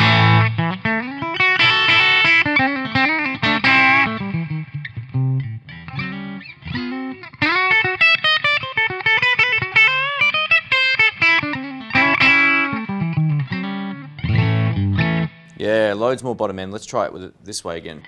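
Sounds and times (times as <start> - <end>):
overdriven electric guitar lead: 0.0 - 15.6.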